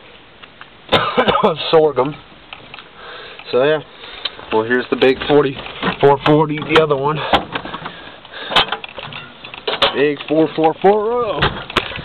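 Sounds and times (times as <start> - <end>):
rustling handling noise: 1.9 - 12.0.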